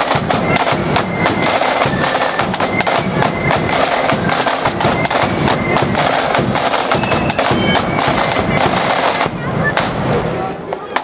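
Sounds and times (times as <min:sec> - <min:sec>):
bass drum: 0:00.0 - 0:10.4
snare drums rolling: 0:00.0 - 0:11.0.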